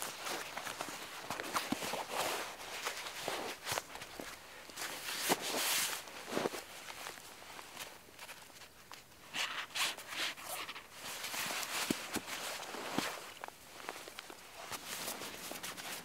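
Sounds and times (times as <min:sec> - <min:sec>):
cloth rustling: 0:00.0 - 0:16.0.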